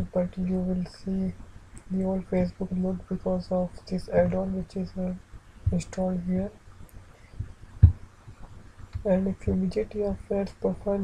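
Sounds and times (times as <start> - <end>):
soft low thumps: 4.1 - 10.1.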